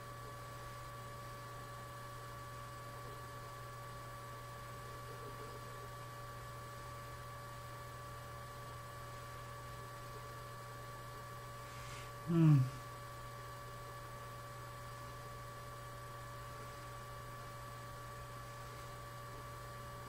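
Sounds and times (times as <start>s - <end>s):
electrical mains hum: 0.0s - 20.0s
man's short low vocal sound: 12.2s - 12.8s.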